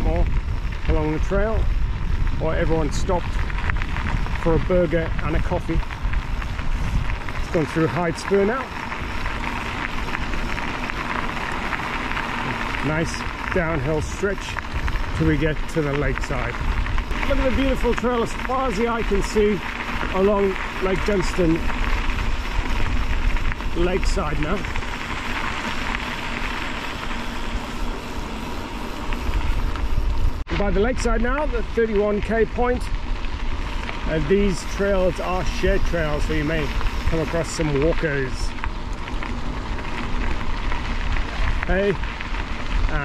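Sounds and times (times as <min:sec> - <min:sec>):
bike tyres rolling over gravel: 0:00.0 - 0:43.0
wind buffeting microphone: 0:00.0 - 0:43.0.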